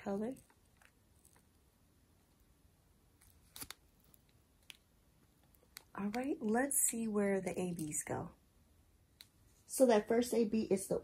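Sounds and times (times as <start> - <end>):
plastic bags crinkling: 3.2 - 4.8.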